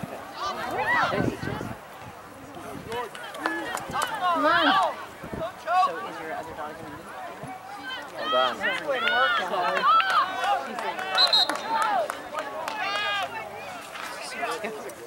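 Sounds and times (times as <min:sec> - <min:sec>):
people calling out and talking: 0:00.0 - 0:15.0.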